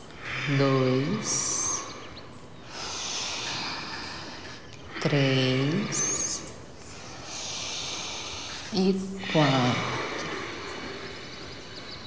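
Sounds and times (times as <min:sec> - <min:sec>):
person breathing through throat: 0:05.9 - 0:12.0.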